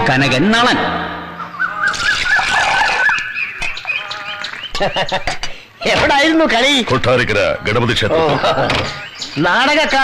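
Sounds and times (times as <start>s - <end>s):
bird calling: 0.2s - 10.0s.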